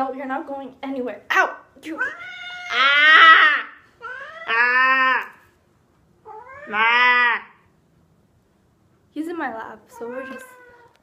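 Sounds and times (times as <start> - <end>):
cat meowing: 2.0 - 5.4, 6.2 - 7.6, 10.0 - 11.0.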